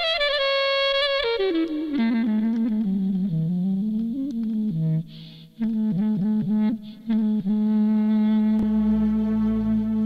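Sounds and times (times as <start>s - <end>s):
clarinet playing: 0.0s - 5.0s, 5.6s - 10.0s.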